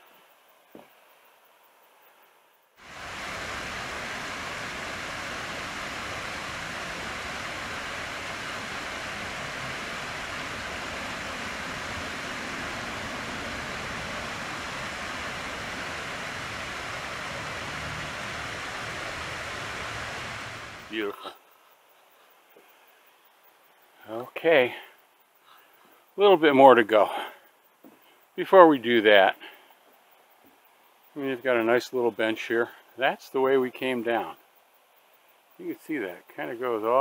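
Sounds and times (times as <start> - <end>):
water rushing over cascade: 2.8 - 21.2.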